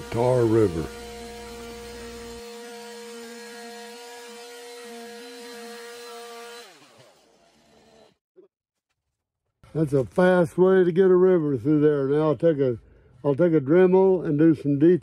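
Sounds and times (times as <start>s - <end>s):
chainsaw carving wood: 0.0s - 8.2s.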